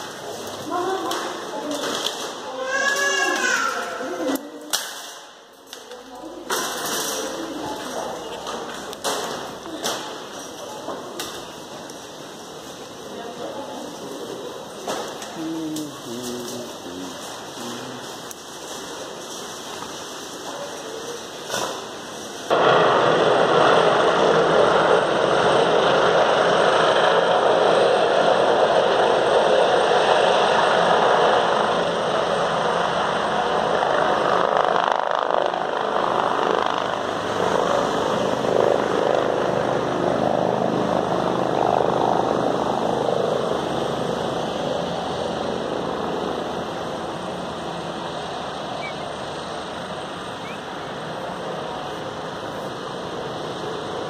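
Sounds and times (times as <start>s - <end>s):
road traffic roar: 0.0s - 54.0s.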